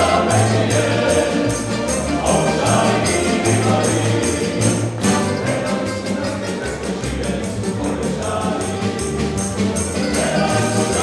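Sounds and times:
acoustic guitar strumming: 0:00.0 - 0:11.0
men singing in harmony: 0:00.0 - 0:11.0.

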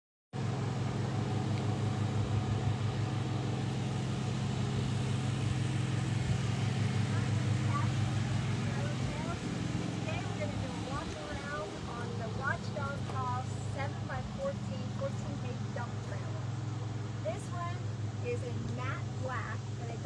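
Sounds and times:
motor humming: 0:00.4 - 0:20.0
faint voices: 0:06.6 - 0:20.0.

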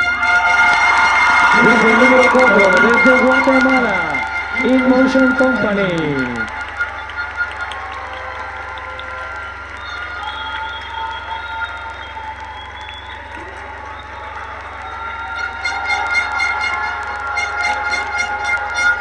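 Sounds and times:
crowd applauding and cheering: 0:00.0 - 0:19.0.

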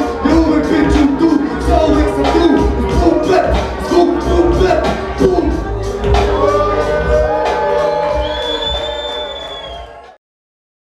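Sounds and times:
hip-hop beat over club speakers: 0:00.0 - 0:10.2.

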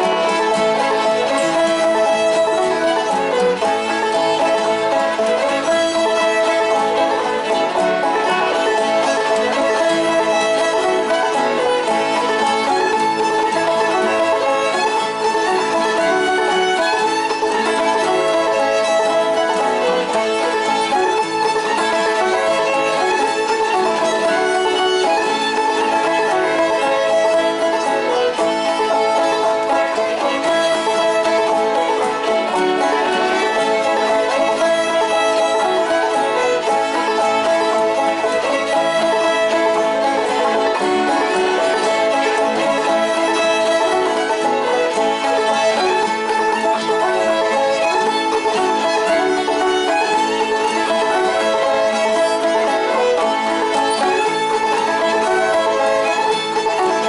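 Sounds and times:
banjo playing: 0:00.0 - 0:57.0
fiddles playing: 0:00.0 - 0:57.0
guitar accompanying: 0:00.0 - 0:57.0.

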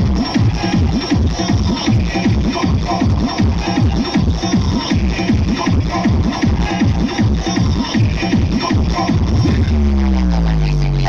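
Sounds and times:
electronic dance music: 0:00.0 - 0:11.0
sliding heavy bass line: 0:00.0 - 0:11.0.

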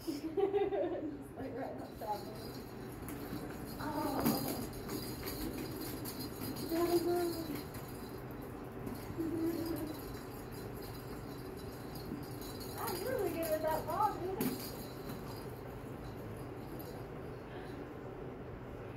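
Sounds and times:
puppies playing: 0:01.6 - 0:17.8.

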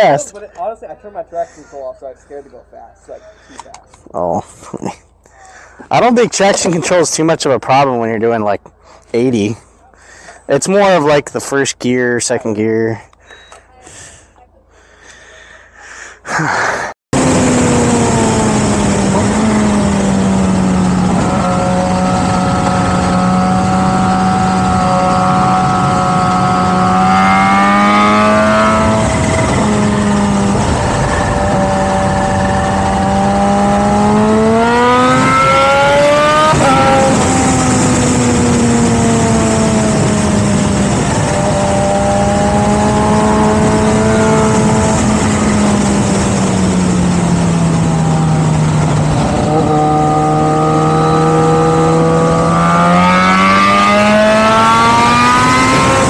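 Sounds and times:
wind and road noise: 0:00.0 - 0:56.0
motorcycle engine revving: 0:17.2 - 0:56.0.

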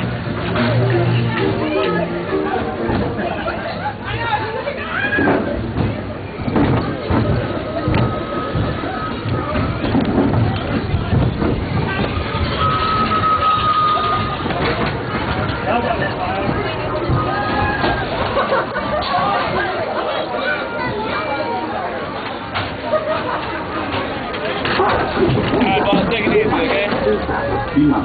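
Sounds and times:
crowd chatter: 0:00.0 - 0:28.0
ride train running: 0:00.0 - 0:28.0.

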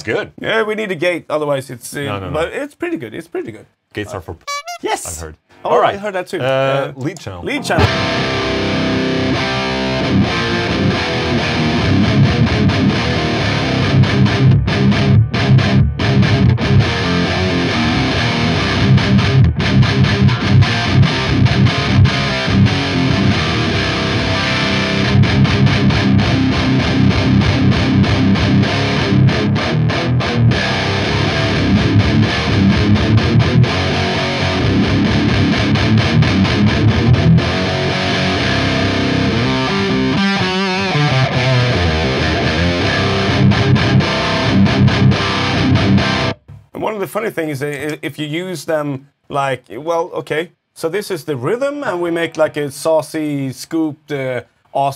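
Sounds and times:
distorted electric guitar riffing: 0:07.5 - 0:46.6.

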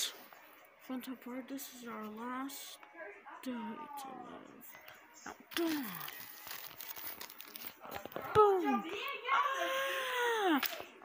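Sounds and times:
paper crinkling and rustling: 0:05.5 - 0:08.6.

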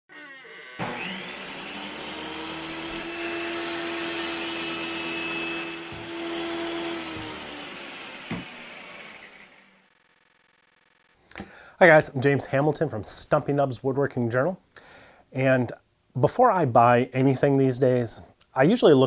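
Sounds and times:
circular saw cutting wood: 0:00.1 - 0:11.1.

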